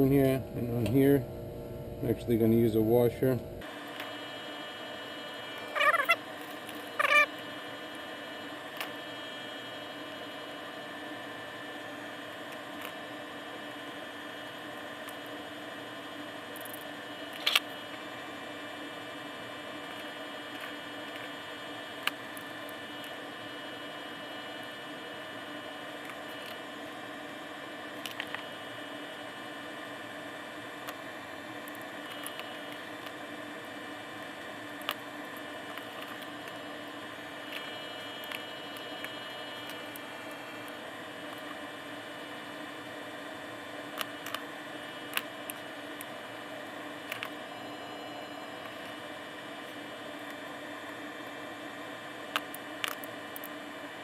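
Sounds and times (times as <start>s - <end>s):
steady hum and hiss: 0.0s - 54.0s
short squeaky pitched sounds: 5.6s - 6.2s, 7.0s - 7.3s.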